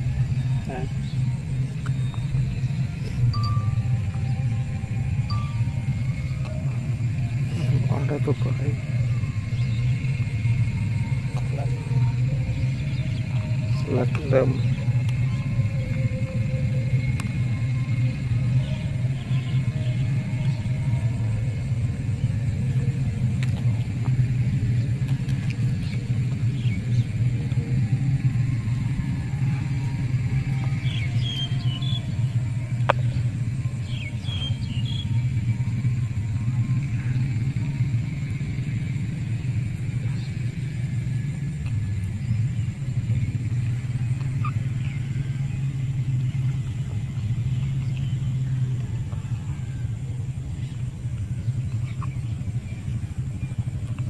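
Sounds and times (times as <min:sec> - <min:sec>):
low rumble: 0:00.0 - 0:54.0.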